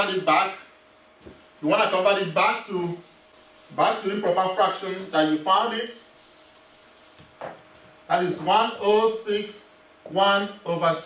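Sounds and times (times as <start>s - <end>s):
eraser wiping whiteboard: 1.8s - 7.6s.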